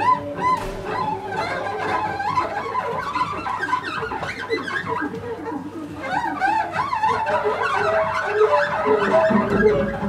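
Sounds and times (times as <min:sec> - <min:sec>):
experimental improvised music: 0:00.0 - 0:10.0.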